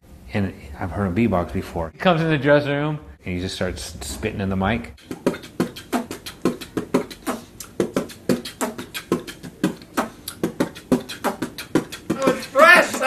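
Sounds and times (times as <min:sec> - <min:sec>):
person beatboxing: 0:05.0 - 0:13.0.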